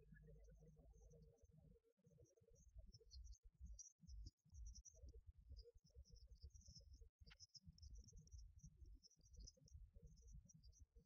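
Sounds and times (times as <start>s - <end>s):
faint high-pitched chirping: 0.0s - 11.0s.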